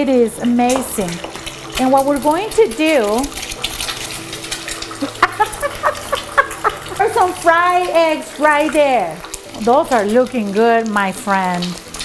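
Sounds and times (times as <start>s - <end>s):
eggs sizzling in a frying pan: 0.0s - 12.0s
woman laughing: 5.0s - 7.3s.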